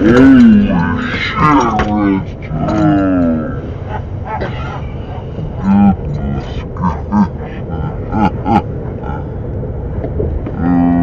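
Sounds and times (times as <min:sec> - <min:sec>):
vehicle cabin rumble: 0:00.0 - 0:11.0
man humming or groaning: 0:10.5 - 0:11.0.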